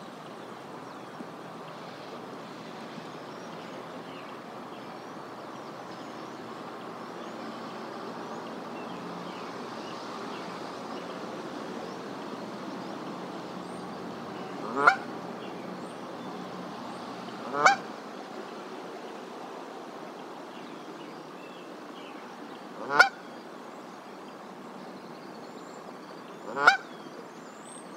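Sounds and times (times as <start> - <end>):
background hiss: 0.0 - 27.9
goose honking: 14.6 - 15.0, 17.5 - 17.8, 22.8 - 23.2, 26.5 - 26.8.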